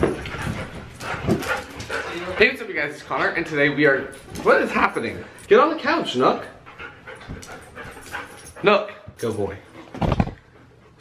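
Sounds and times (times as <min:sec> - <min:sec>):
paws thumping on cushions: 0:00.0 - 0:02.5, 0:06.8 - 0:08.6.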